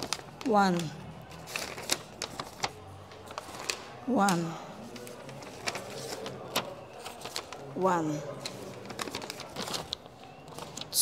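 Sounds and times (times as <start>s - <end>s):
paper rustling: 0.0s - 11.0s
sharp paper crackles: 0.0s - 11.0s.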